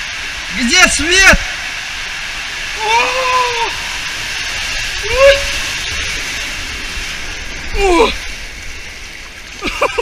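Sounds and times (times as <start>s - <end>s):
water rushing through slide tube: 0.0s - 10.0s
person exclaiming: 2.8s - 3.9s, 5.0s - 5.8s, 7.7s - 8.2s.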